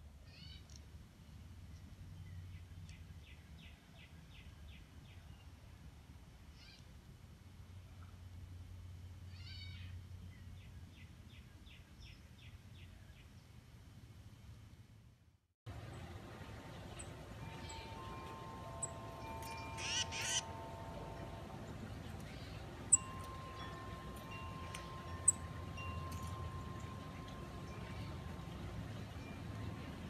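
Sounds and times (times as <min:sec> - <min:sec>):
low steady hum: 0:00.0 - 0:30.0.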